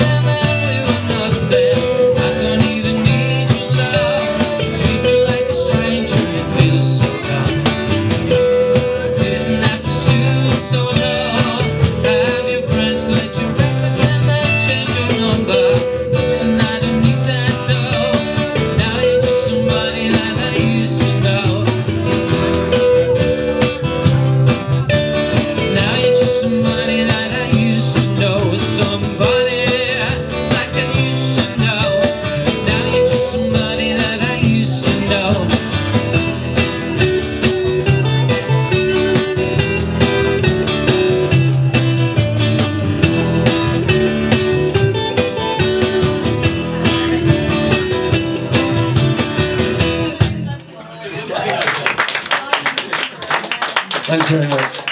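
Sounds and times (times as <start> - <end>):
double bass: 0.0 - 50.6
electric guitar: 0.0 - 50.8
cajon: 0.0 - 50.9
strummed acoustic guitar: 0.0 - 50.9.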